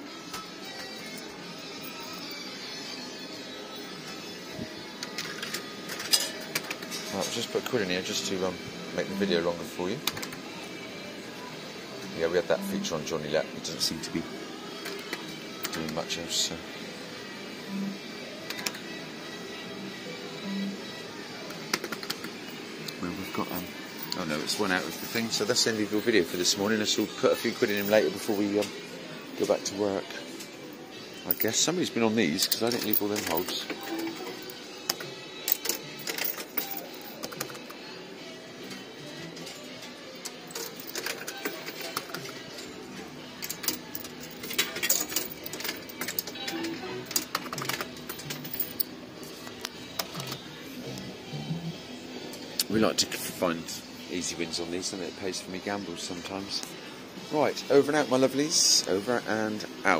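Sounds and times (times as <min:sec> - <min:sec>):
arcade background din: 0:00.0 - 0:59.9
fruit machine music and jingles: 0:31.1 - 0:37.8, 0:38.6 - 0:49.0.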